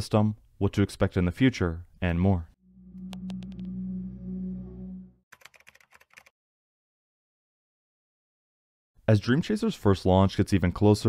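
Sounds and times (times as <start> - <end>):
low steady drone: 2.6 - 5.2
keyboard typing clicks: 3.1 - 3.7, 5.4 - 6.3.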